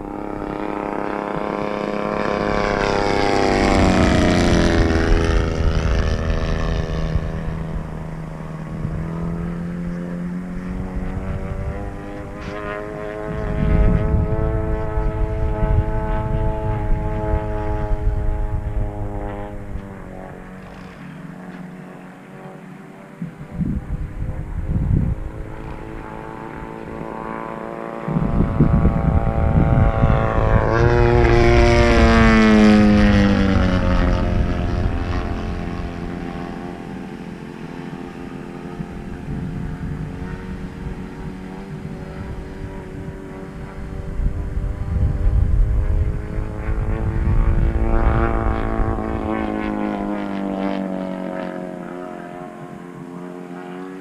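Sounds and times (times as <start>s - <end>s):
low rumbles: 0.0s - 22.1s, 23.2s - 50.2s
model plane engine and propeller: 0.0s - 54.0s.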